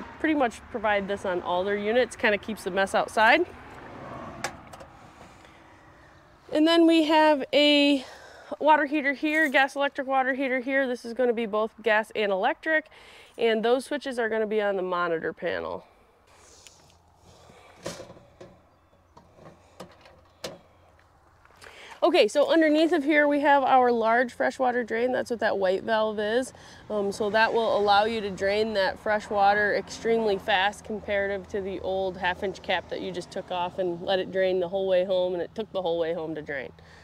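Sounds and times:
footsteps shuffling on gravel: 9.2 - 9.7, 20.9 - 22.0.

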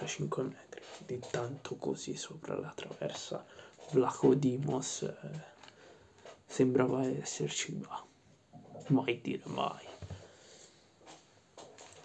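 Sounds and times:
faint soft noises: 0.0 - 12.0.

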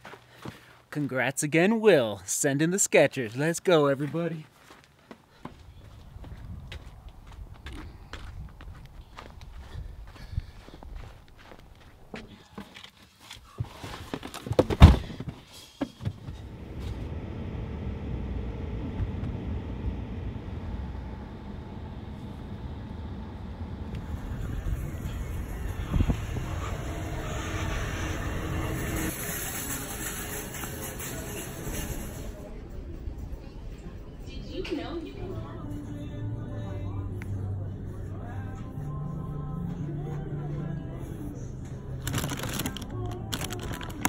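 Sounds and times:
footsteps on pavement: 4.0 - 13.8
car road and engine rumble: 16.0 - 44.0.

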